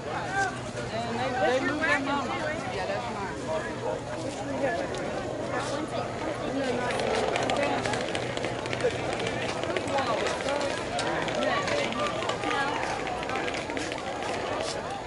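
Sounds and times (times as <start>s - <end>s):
people talking and calling: 0.0s - 15.0s.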